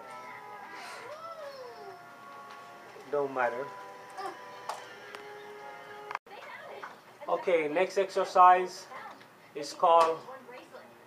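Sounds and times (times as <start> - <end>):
faint background music tones: 0.0 - 11.0.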